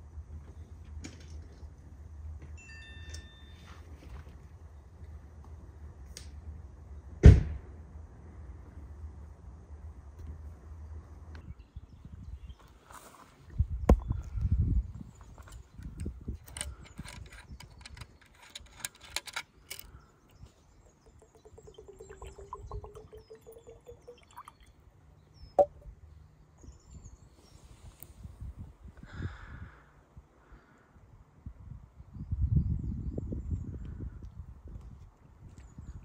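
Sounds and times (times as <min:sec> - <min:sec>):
liquid pouring into glass: 0:20.8 - 0:24.8.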